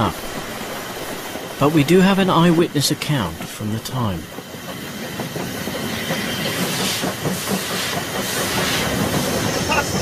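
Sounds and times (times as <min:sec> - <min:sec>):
steam hissing: 0:00.0 - 0:10.0
wheels clattering on rails: 0:00.0 - 0:10.0.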